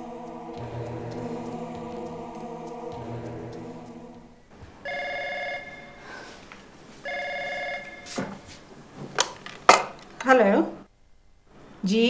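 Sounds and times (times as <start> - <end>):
held chords of background music: 0.0 - 4.5
telephone ringing: 0.0 - 6.0, 7.0 - 8.1.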